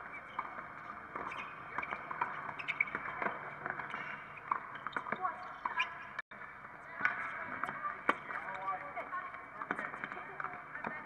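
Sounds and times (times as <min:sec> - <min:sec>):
players' voices and calls: 0:00.1 - 0:11.0.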